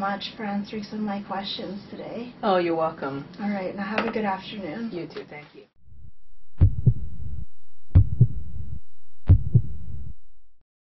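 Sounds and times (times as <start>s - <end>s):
heartbeat: 5.9s - 10.3s.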